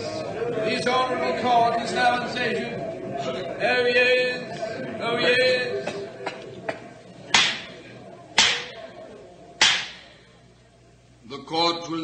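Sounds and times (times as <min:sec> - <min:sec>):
gavel rapping: 0:07.3 - 0:07.8, 0:08.4 - 0:08.8, 0:09.6 - 0:10.0.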